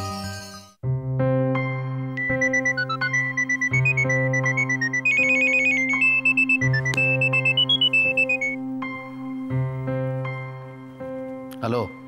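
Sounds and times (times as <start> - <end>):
mobile phone ringtone: 2.2 - 8.6.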